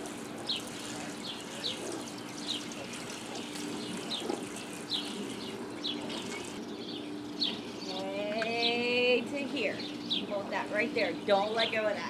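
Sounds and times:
steady low hum: 0:00.0 - 0:12.0
small birds chirping: 0:00.4 - 0:12.0.

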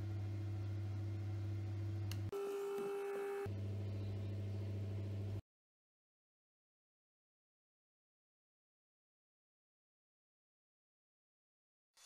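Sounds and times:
low electrical hum: 0:00.0 - 0:05.4.

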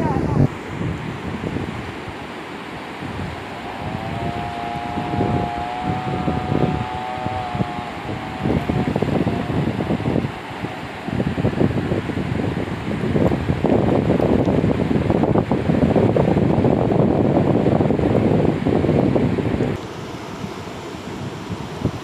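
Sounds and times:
river water rushing over rapids: 0:00.0 - 0:14.8
wind gusting on microphone: 0:00.0 - 0:22.0
steady high tone: 0:03.3 - 0:12.9.

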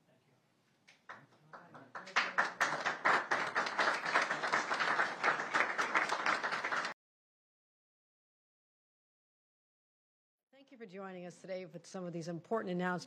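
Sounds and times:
audience applauding: 0:01.1 - 0:07.0.

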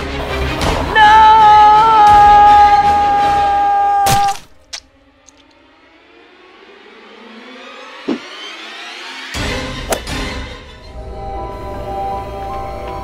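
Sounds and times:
horror film score: 0:00.0 - 0:13.0.

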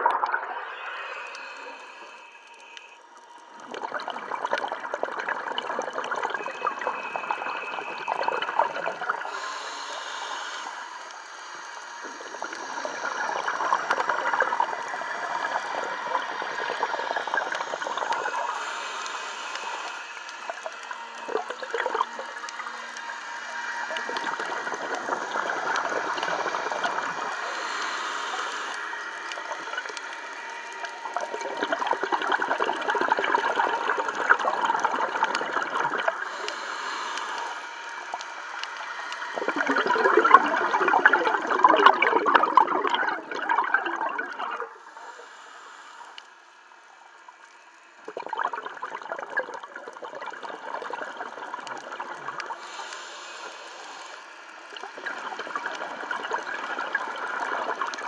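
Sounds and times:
underwater exhaled breath bubbling: 0:00.0 - 0:46.2, 0:48.0 - 0:58.0.

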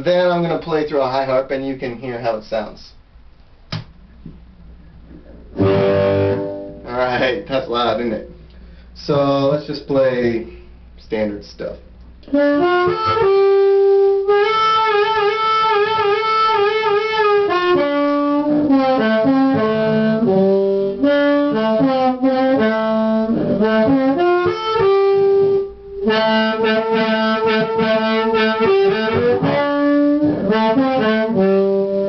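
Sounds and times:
distorted blues harmonica: 0:05.5 - 0:06.9, 0:12.3 - 0:32.0.

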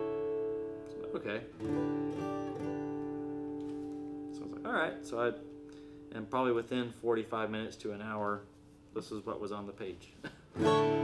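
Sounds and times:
plucked guitar note: 0:00.0 - 0:06.1, 0:10.6 - 0:11.0
acoustic guitar chord ringing: 0:00.0 - 0:06.8, 0:10.5 - 0:11.0.

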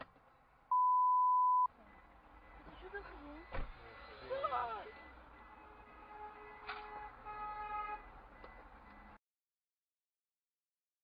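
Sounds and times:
low road rumble: 0:00.0 - 0:09.2
car horn honking: 0:03.9 - 0:08.1.

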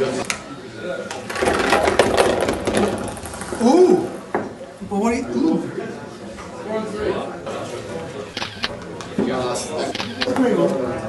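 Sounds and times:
ping pong balls clattering: 0:01.2 - 0:04.6.

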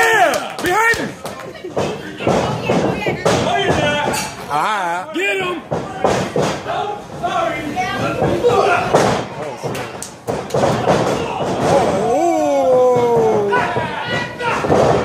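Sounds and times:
spectators shouting: 0:00.0 - 0:01.2, 0:10.9 - 0:15.0.

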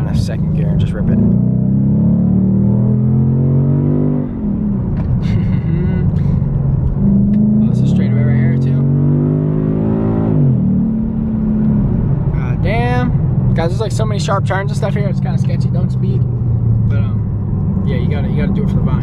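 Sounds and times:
car engine revving: 0:00.0 - 0:19.0.

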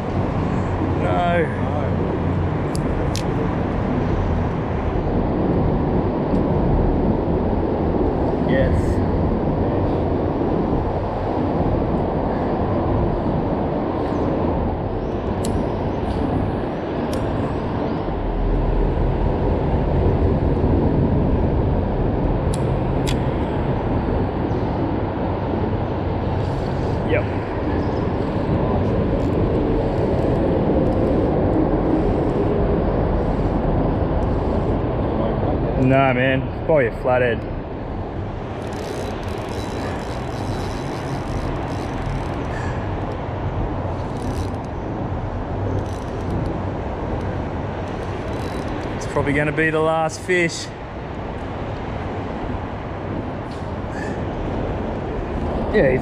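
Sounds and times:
road traffic rumble: 0:00.0 - 0:56.0.

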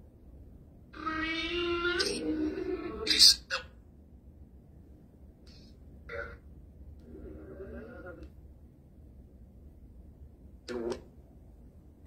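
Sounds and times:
voice-like synthetic tone: 0:10.7 - 0:11.1.

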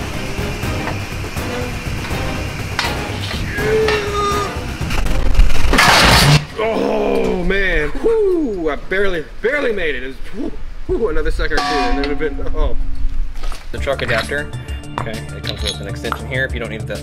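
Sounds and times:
background music: 0:00.0 - 0:06.6, 0:13.7 - 0:17.0
man exclaiming breathlessly: 0:03.4 - 0:04.6.

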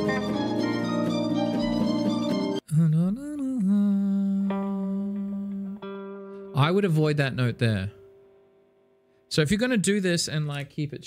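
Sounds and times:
electric guitar plucked notes: 0:00.0 - 0:02.6, 0:04.2 - 0:09.2
man humming: 0:02.6 - 0:05.9
person speaking: 0:06.6 - 0:08.0, 0:09.3 - 0:11.0.

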